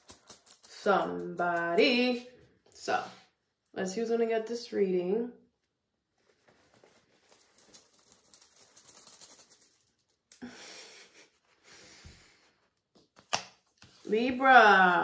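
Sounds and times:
fabric pouch rustling: 6.2 - 9.8.

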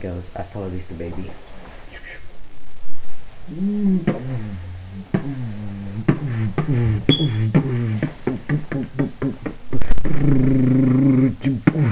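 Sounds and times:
held low vocal note: 3.5 - 11.9
young man laughing: 6.1 - 10.4.

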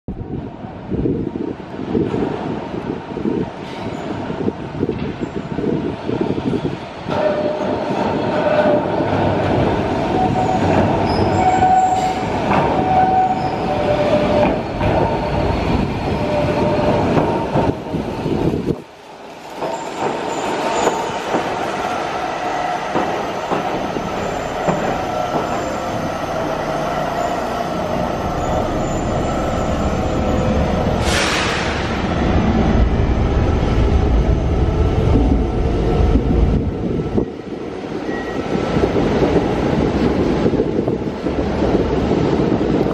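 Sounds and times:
electric train rolling in: 0.3 - 42.9
train wheels clicking on rail joints: 19.3 - 22.2, 22.8 - 26.9
wheels squealing: 24.0 - 31.0.

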